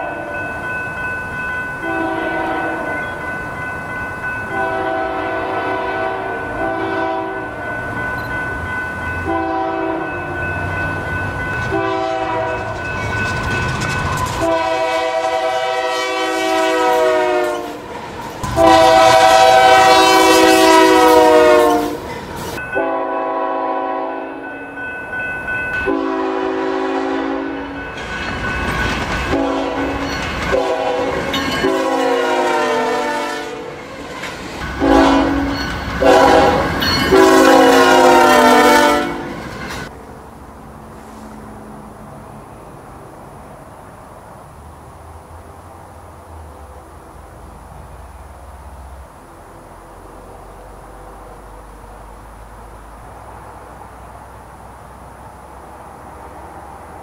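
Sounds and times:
locomotive air horn blasts: 1.8 - 2.9, 4.5 - 7.6, 9.2 - 10.2, 11.7 - 12.8, 14.4 - 22.1, 22.8 - 24.4, 25.9 - 27.8, 29.3 - 33.8, 34.8 - 39.4.

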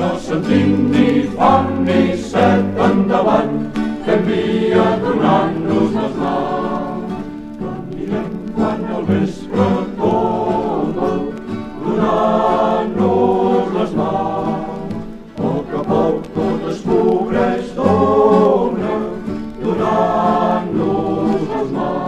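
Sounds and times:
young voices singing in chorus: 0.0 - 22.0.

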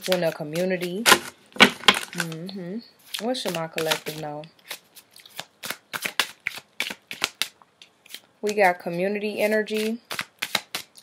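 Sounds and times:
cards being shuffled: 0.0 - 11.0.

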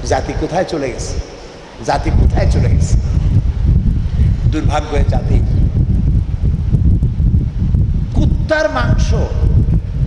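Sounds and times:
fan air buffeting microphone: 0.0 - 10.0.

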